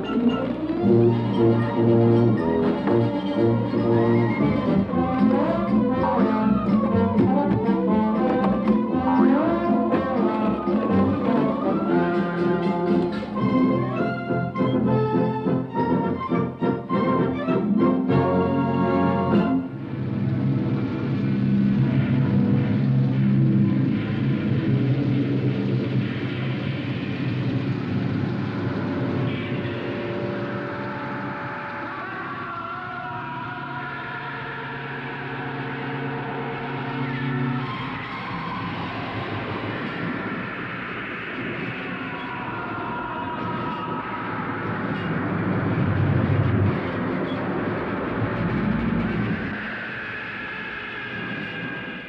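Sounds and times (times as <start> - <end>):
low drone tones: 0.0 - 52.0
rushing rumbling noise: 18.0 - 52.0
rumbling special effects: 19.7 - 52.0.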